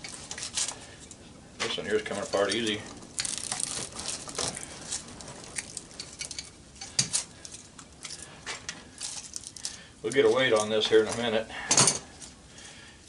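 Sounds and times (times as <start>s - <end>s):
wire crinkling and scraping: 0.0s - 13.0s.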